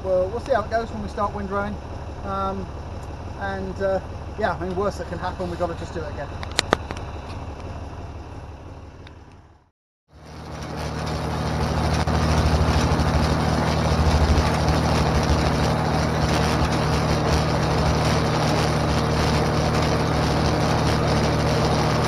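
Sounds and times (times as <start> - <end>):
tractor engine running: 0.0 - 22.0.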